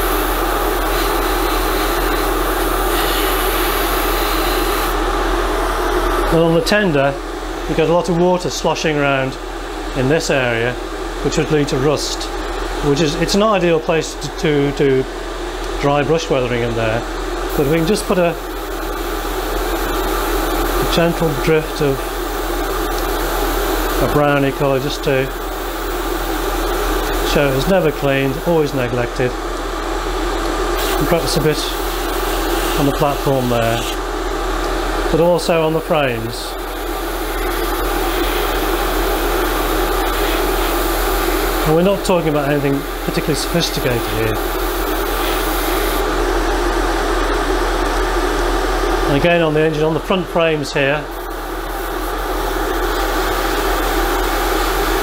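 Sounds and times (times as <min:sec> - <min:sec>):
airbrush hiss: 0:00.0 - 0:05.0, 0:30.8 - 0:34.0, 0:36.5 - 0:46.0
airbrush hiss of rushing air: 0:00.0 - 0:05.0.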